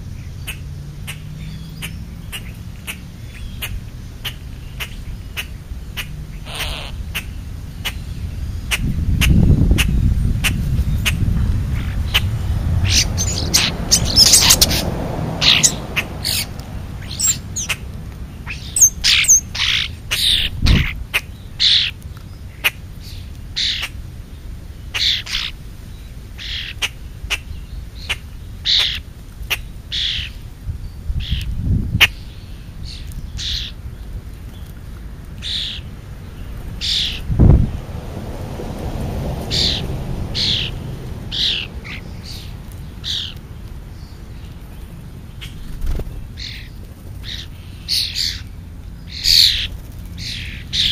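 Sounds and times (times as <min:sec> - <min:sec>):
birds chirping: 0:00.0 - 0:37.9, 0:38.8 - 0:50.9.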